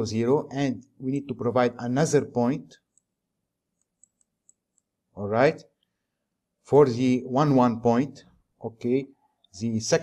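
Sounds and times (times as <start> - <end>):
computer mouse clicks: 2.8 - 5.0.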